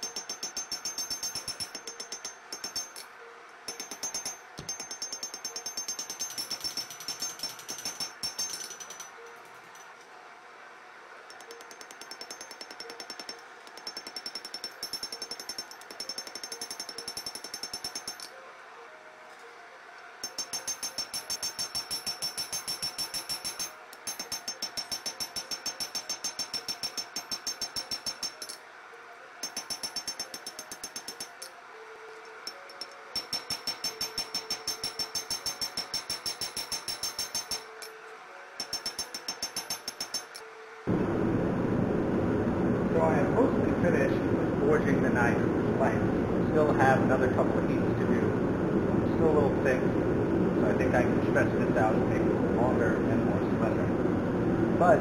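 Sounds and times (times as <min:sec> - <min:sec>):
anvil ringing: 0:03.7 - 0:09.2, 0:20.2 - 0:28.6, 0:32.5 - 0:37.9
hammer blows on anvil: 0:32.5 - 0:37.7.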